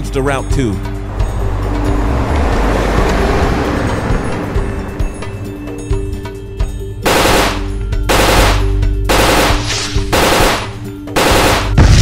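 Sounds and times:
automatic gunfire bursts: 0:07.1 - 0:11.8.

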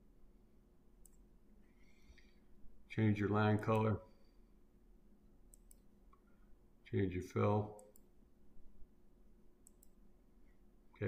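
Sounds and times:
computer mouse clicks: 0:01.0 - 0:01.2, 0:05.5 - 0:06.2, 0:07.8 - 0:08.1, 0:09.6 - 0:10.0.

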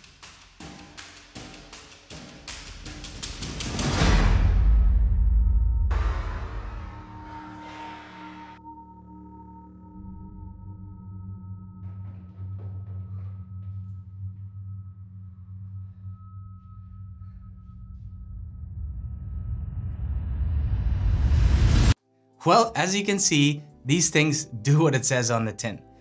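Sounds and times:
suspenseful music with low drone: 0:00.0 - 0:22.0.

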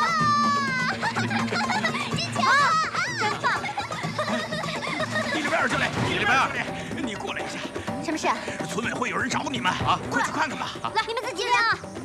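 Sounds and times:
children shouting and cheering: 0:00.0 - 0:05.3
background music: 0:00.0 - 0:12.0.

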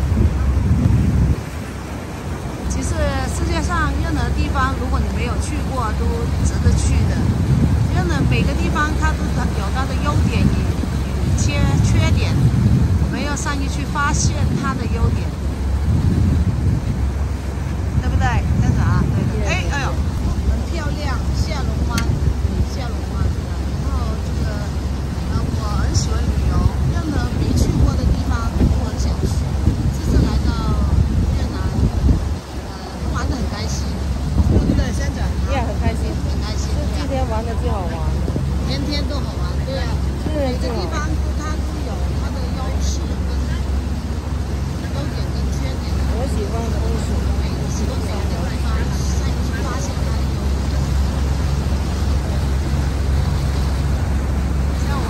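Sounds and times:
boat engine rumble: 0:00.0 - 0:55.0
wind buffeting microphone: 0:00.0 - 0:55.0
faint voices: 0:17.4 - 0:55.0.

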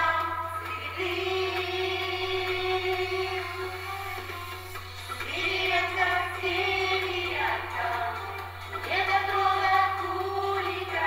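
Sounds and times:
women singing together: 0:00.0 - 0:04.4, 0:05.1 - 0:11.0.

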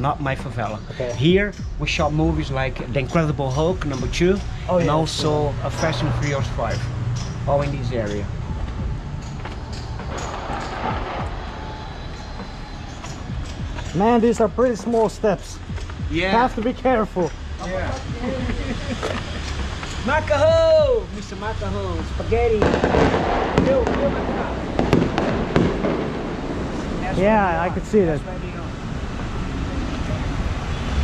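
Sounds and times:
background noise and voices: 0:00.0 - 0:09.3, 0:10.8 - 0:25.7, 0:26.5 - 0:31.0
street low rumble: 0:00.0 - 0:31.0
sharp pops: 0:22.6 - 0:27.0.

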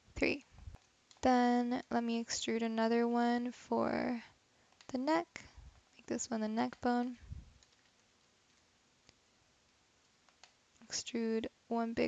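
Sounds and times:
mouse and keyboard clicks: 0:07.6 - 0:08.6.

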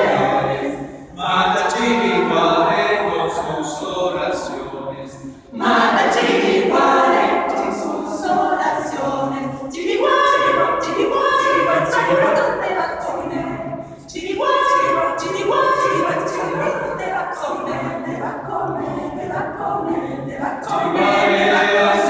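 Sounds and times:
mixed choir singing a cappella: 0:00.0 - 0:22.0.

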